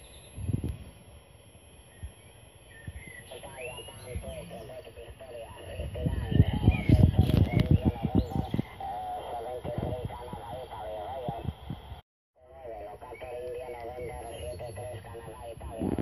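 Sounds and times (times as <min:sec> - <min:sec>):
crackling static: 0:00.0 - 0:16.0
radio voice through loudspeaker: 0:03.2 - 0:16.0.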